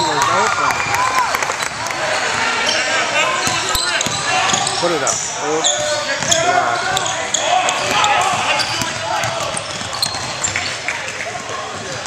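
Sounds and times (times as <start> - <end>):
sneaker squeaks: 2.6 - 10.8
basketball bouncing: 7.7 - 12.0.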